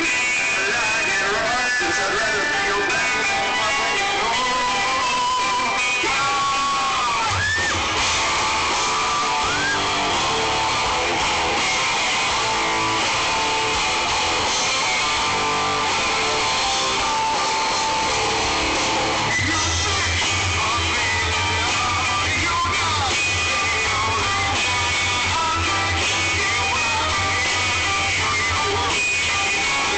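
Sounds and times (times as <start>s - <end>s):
bass guitar: 0.0s - 29.9s
electric guitar with bent notes: 0.0s - 29.9s
live rock band: 0.0s - 29.9s.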